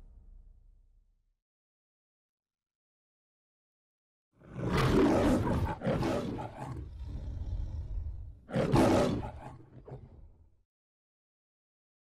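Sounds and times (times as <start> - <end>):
lion roaring: 4.4 - 10.4.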